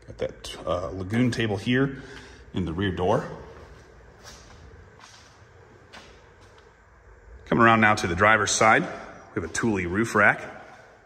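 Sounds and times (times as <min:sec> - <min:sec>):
soft footsteps on concrete: 0:02.0 - 0:06.9.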